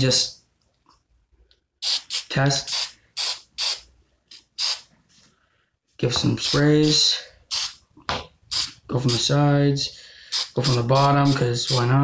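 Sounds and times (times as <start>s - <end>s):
spray-paint can hissing: 1.8s - 4.9s, 6.4s - 7.8s, 8.5s - 9.3s, 10.3s - 11.9s.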